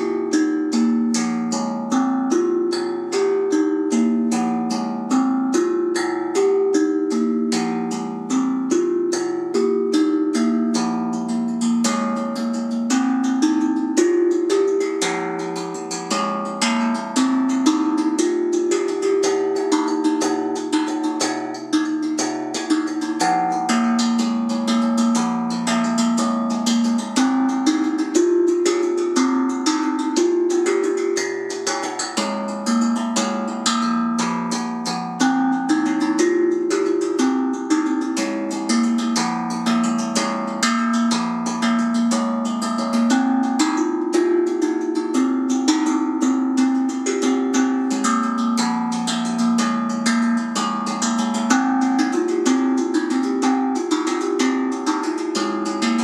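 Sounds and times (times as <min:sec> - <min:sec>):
steel tongue drum melody: 0:00.0 - 0:56.0.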